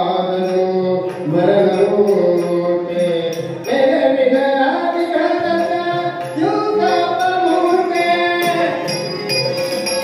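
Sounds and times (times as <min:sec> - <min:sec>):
man singing devotional song: 0:00.0 - 0:09.1
tabla: 0:00.0 - 0:10.0.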